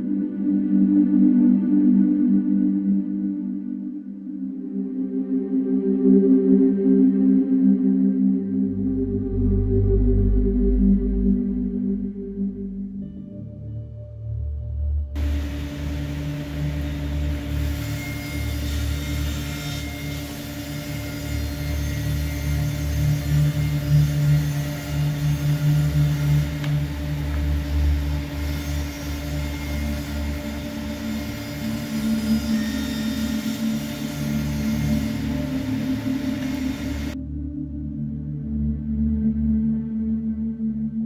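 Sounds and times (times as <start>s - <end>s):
bandsaw cutting wood: 15.2s - 37.2s
dust extraction hiss: 15.2s - 37.2s
motor hum: 15.2s - 37.2s
table saw cutting plywood: 15.2s - 37.2s.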